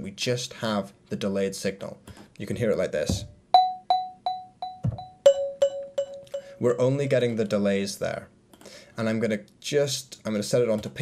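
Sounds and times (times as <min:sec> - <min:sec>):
echoing marimba notes: 0:03.9 - 0:06.6
low thump: 0:04.8 - 0:05.1.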